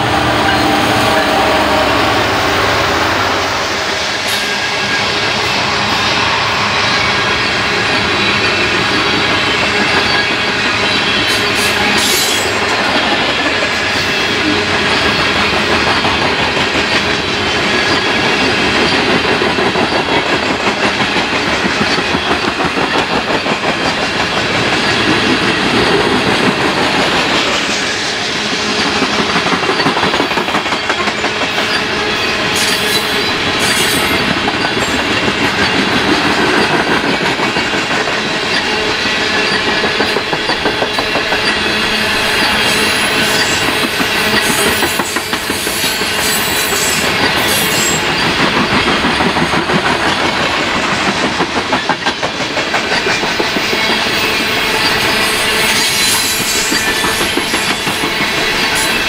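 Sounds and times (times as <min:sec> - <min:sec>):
train wheels rolling on rails: 0:00.0 - 0:59.0
rapid clickety-clack: 0:08.0 - 0:59.0.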